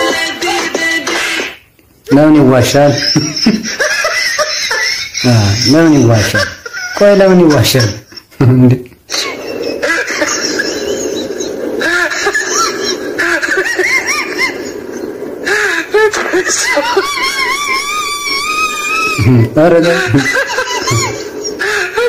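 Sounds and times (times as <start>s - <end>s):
people laughing and squealing: 3.0s - 7.0s, 9.1s - 22.0s
noisy background: 7.1s - 22.0s
high-pitched wavering cry: 9.1s - 22.0s.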